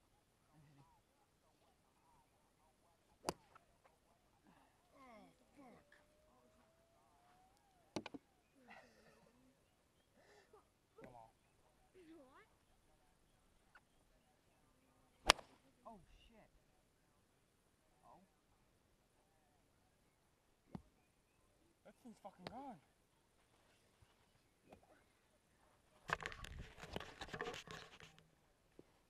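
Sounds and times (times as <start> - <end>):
golf club striking ball: 15.3 - 15.5.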